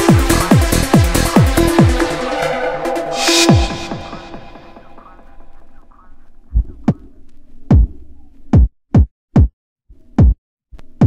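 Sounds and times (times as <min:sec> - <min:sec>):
electronic dance music: 0:00.0 - 0:05.4
heavy kick drum thuds: 0:07.7 - 0:09.5.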